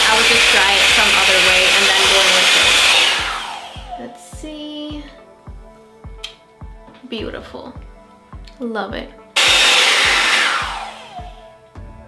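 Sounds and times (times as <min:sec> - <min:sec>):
hot-air styler blowing: 0:00.0 - 0:04.1, 0:09.4 - 0:11.5.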